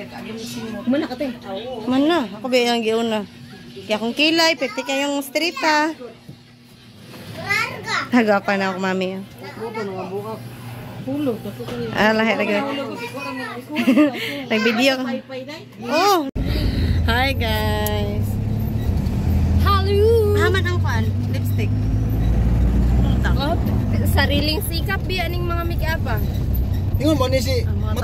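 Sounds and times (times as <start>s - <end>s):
vehicle engine rumble: 16.4s - 28.0s.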